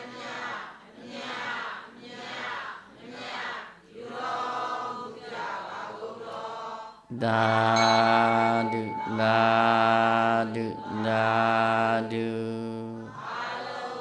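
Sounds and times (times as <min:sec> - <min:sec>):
man chanting low notes: 0:07.1 - 0:13.0.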